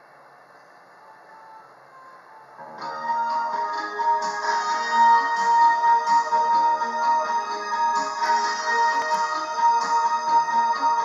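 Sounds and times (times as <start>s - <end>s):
karaoke backing track: 0.0s - 11.0s
low hiss: 0.0s - 11.0s.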